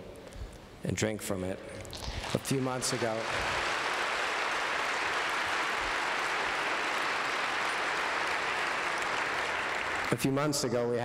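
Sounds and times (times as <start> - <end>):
crowd applauding: 1.9 - 10.4.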